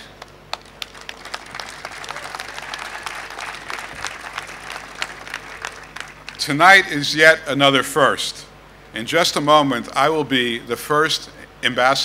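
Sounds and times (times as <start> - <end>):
audience applauding: 0.5 - 6.5.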